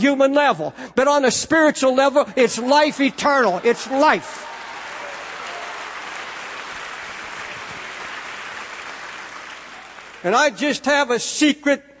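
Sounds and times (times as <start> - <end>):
crowd applauding: 2.6 - 10.5.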